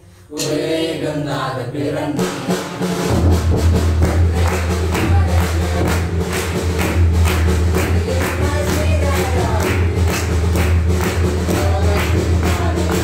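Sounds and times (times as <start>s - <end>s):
group clapping: 3.1s - 13.0s.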